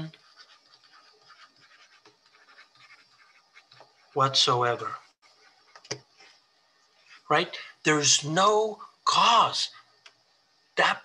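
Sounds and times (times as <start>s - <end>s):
stylus scratching on tablet: 0.0s - 6.4s.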